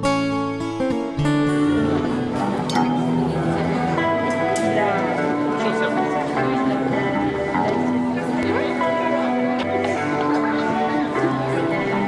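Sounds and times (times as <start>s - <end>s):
plucked acoustic guitar music: 0.0s - 12.0s.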